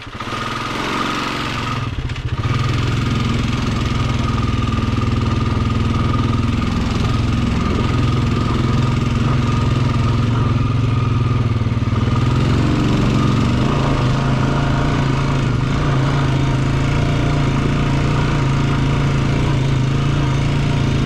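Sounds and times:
atv engine running: 0.0s - 21.0s.

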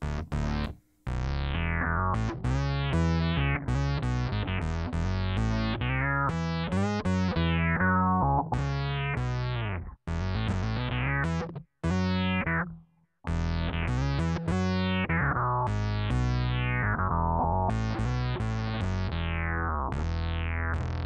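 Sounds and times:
electric bass with envelope filter: 0.0s - 21.0s.

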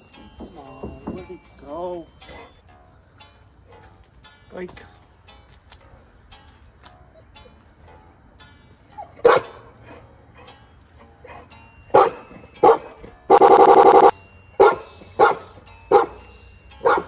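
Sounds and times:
dog barking: 9.2s - 9.6s, 11.9s - 16.2s.

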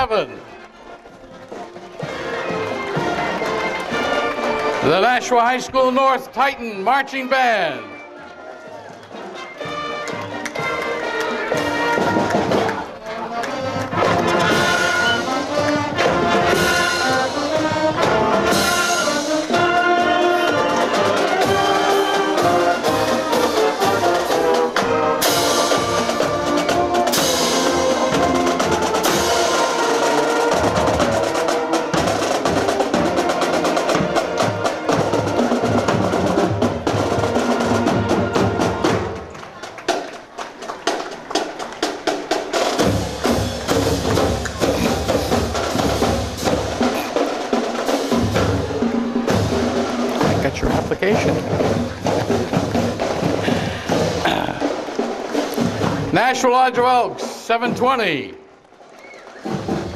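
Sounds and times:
marching band playing: 0.0s - 59.9s
snare and bass drums cadence: 40.9s - 59.9s.

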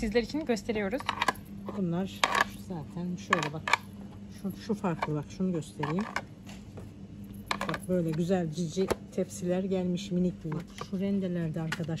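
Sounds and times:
trays clacking together: 7.4s - 8.3s.

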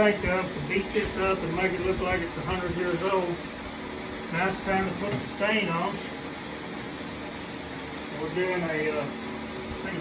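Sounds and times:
fan whirring: 0.0s - 10.0s.

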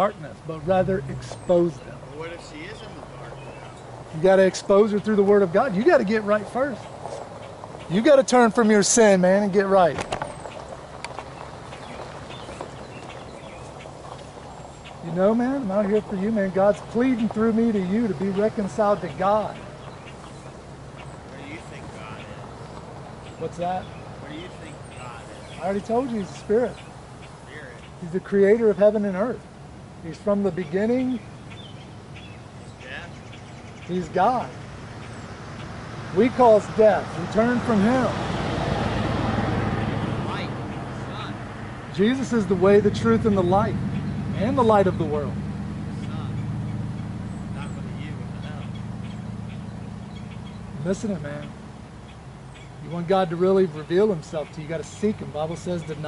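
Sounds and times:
road traffic passing: 0.0s - 56.0s.

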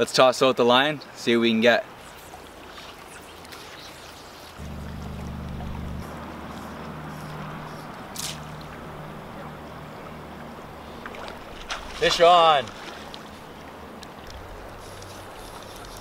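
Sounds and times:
river water rushing: 4.5s - 16.0s.

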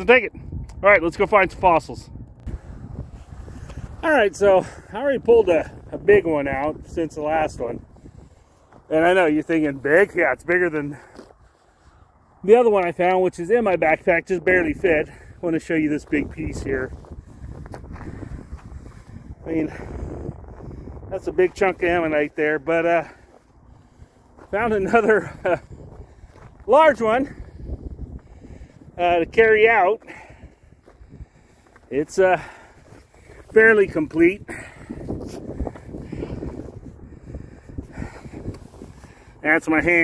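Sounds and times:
wind rumbling on microphone: 0.0s - 40.0s
shoe crunching on gravel: 21.2s - 27.8s, 30.8s - 34.3s.

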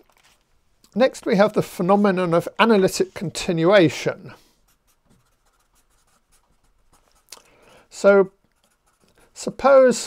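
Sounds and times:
pen scratching on paper: 4.7s - 7.3s, 8.5s - 9.4s.

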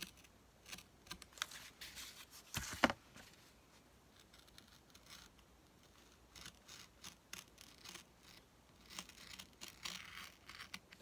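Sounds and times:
craft knife cutting cardboard: 4.1s - 11.0s.

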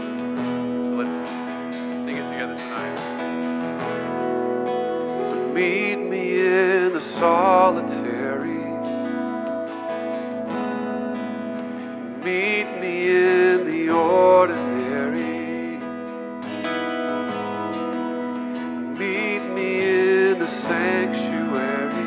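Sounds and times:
acoustic guitar strumming: 0.0s - 22.0s
man singing: 5.2s - 9.4s, 12.0s - 16.8s, 18.9s - 22.0s.

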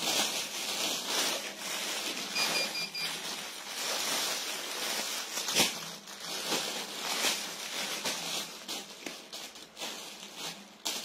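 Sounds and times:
plastic bags rustling: 0.0s - 11.0s
short high electronic beeps: 2.4s - 3.1s.

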